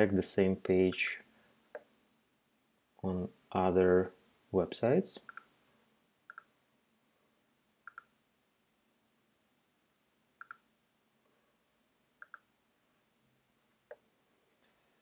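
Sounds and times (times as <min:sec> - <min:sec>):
computer mouse clicks: 0:05.2 - 0:05.5, 0:06.3 - 0:06.5, 0:07.8 - 0:08.1, 0:10.4 - 0:10.6, 0:12.2 - 0:12.5.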